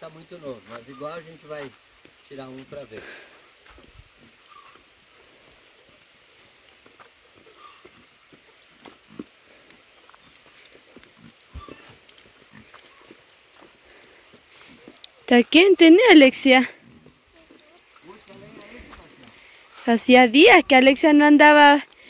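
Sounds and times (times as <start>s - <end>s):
faint outdoor background: 0.0s - 22.0s
footsteps on rocky dirt path: 1.5s - 4.8s, 5.5s - 21.8s.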